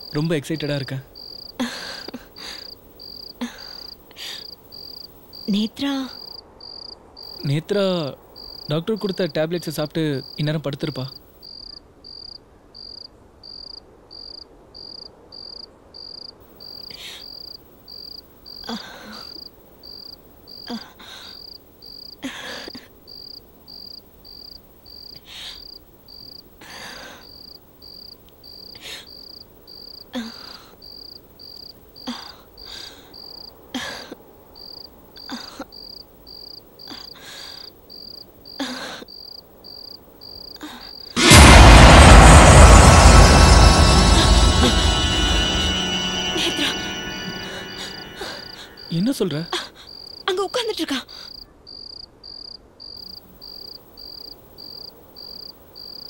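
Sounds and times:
cricket chirping: 0.0s - 56.0s.

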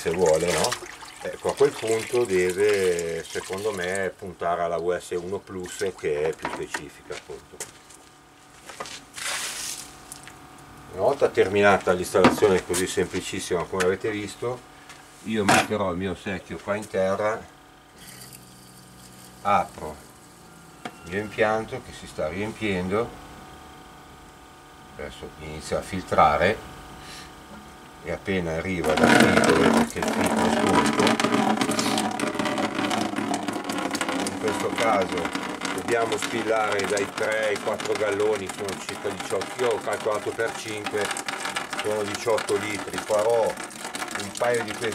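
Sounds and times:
plastic bucket scraping: 0.0s - 4.1s, 28.8s - 44.9s
water rushing through filter: 0.0s - 6.4s, 28.8s - 44.9s.

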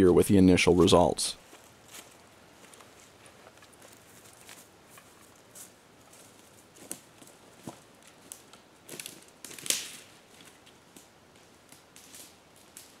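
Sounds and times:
footsteps crunching dry leaves: 1.4s - 10.6s.

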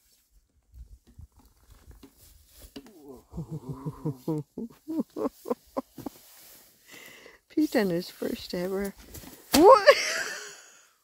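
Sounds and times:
person laughing: 3.0s - 6.1s, 9.6s - 10.7s.

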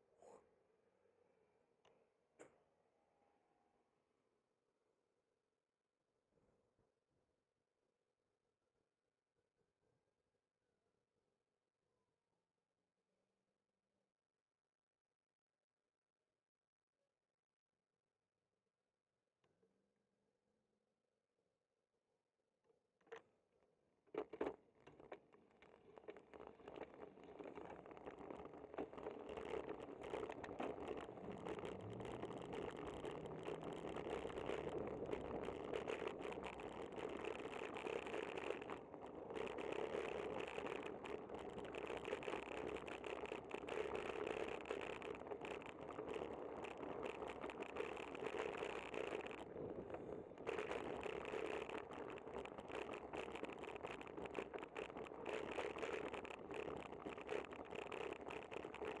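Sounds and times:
bicycle road noise: 24.2s - 59.0s.

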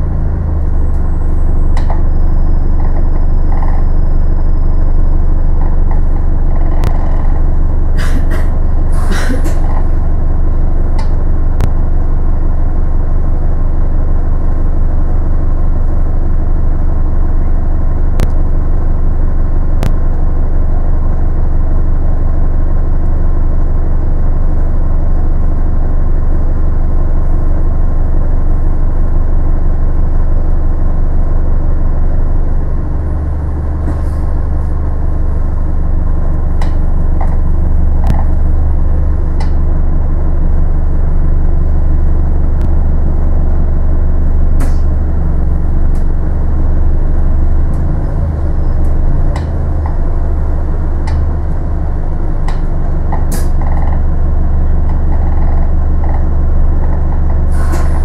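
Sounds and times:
bus engine rumble: 0.0s - 58.0s.

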